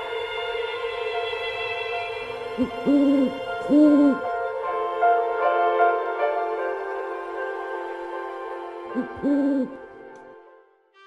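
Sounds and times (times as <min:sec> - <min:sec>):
soft music: 0:00.0 - 0:11.0
cartoon owl hooting: 0:02.6 - 0:04.3, 0:09.0 - 0:09.8.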